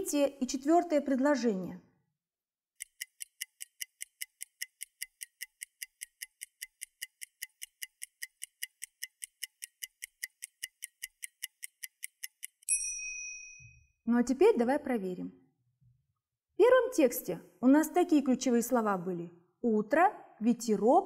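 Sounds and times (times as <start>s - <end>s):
clock ticking: 2.7s - 12.7s
bell-like ding: 12.7s - 13.9s.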